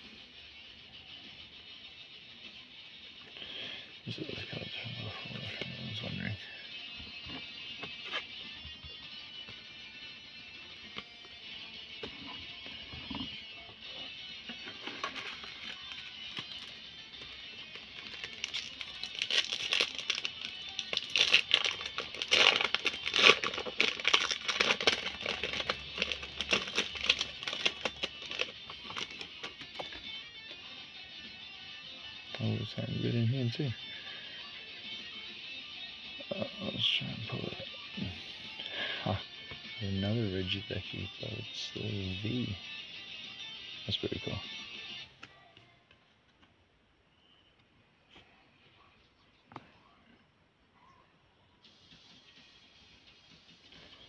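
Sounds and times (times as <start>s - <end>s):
background music: 0.0s - 45.6s, 51.4s - 54.0s
plastic wrapper crinkling: 14.6s - 30.0s.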